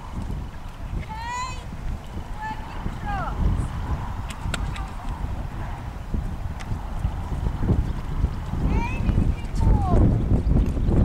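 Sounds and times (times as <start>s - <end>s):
hooves trotting on sand: 0.0s - 11.0s.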